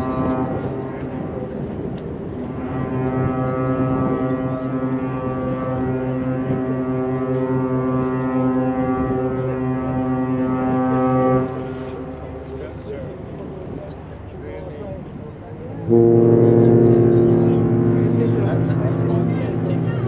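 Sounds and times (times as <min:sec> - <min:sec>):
ship horn deep blast: 0:00.0 - 0:20.0.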